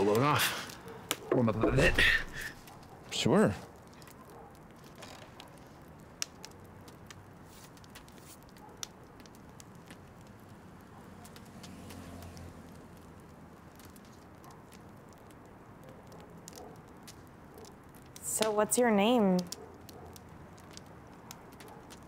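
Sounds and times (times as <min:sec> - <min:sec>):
fire popping: 0:00.0 - 0:22.0
wood fire crackling faintly: 0:00.0 - 0:22.0.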